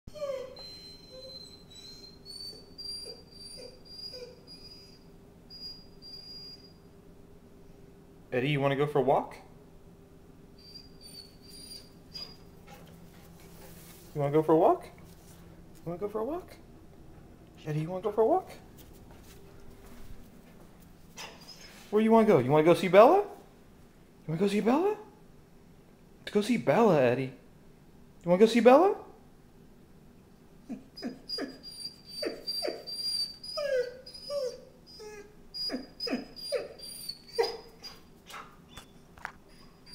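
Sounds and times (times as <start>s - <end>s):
dog whining: 0.1s - 6.8s, 10.6s - 13.6s, 21.2s - 21.8s, 30.6s - 39.9s.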